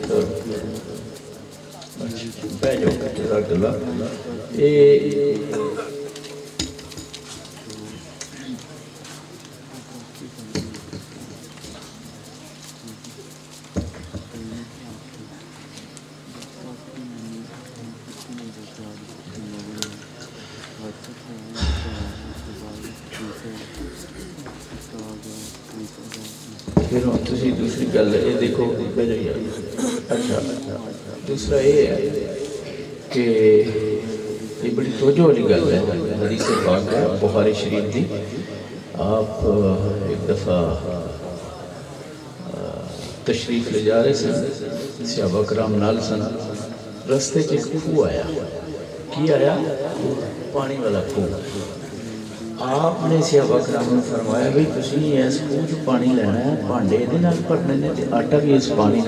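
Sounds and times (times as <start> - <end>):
man speaking over loudspeaker: 0.0 - 1.2, 20.8 - 41.3, 42.4 - 51.7, 52.6 - 59.0
faint crowd murmur: 0.0 - 56.0
steady low hum: 0.0 - 58.8.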